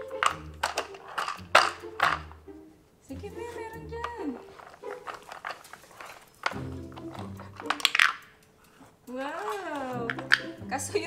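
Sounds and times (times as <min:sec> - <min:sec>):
plastic toy clicks and knocks: 0:00.0 - 0:02.4, 0:03.4 - 0:11.0.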